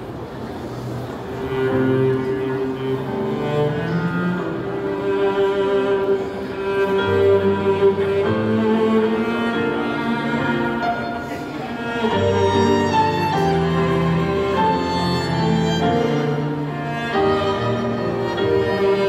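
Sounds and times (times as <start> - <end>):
cello bowing slow melody: 0.8 - 19.0
piano trio playing: 0.9 - 19.0.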